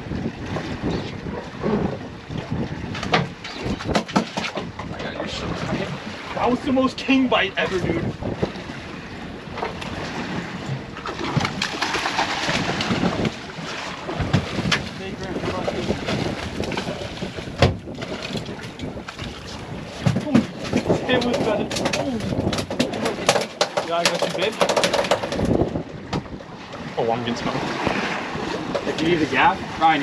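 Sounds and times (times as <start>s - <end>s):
water noise: 0.0s - 30.0s
wind: 0.0s - 30.0s
fishing reels clicking and knocking: 20.8s - 25.8s.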